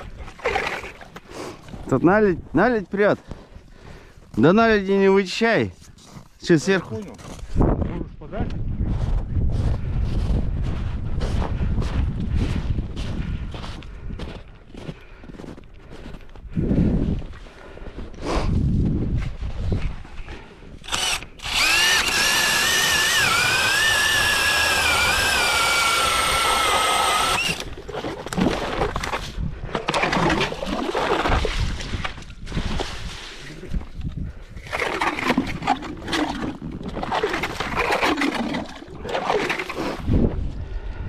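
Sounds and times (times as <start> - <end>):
cordless drill whining: 20.8 - 27.7.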